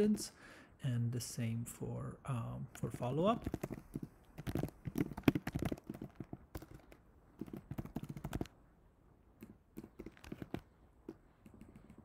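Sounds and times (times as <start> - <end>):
typing on computer keyboard: 3.4 - 8.5, 9.4 - 10.7.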